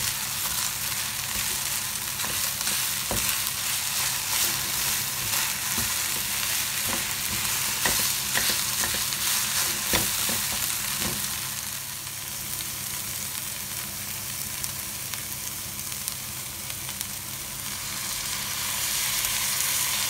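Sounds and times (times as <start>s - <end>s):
noodles sizzling in wok: 0.0s - 20.0s
spatula scraping pan: 1.2s - 11.2s.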